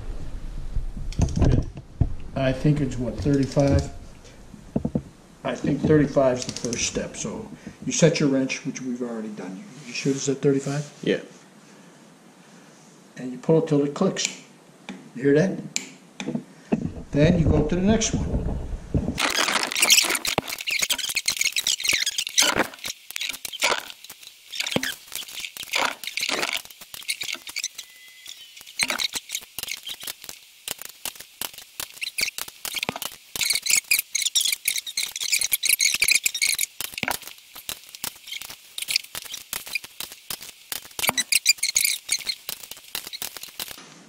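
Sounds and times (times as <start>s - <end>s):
torque wrench ratcheting and clicking: 28.6s - 43.8s.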